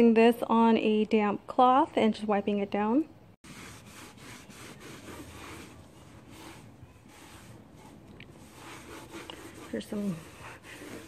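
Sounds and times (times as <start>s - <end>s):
damp cloth wiping wood: 3.4s - 11.0s.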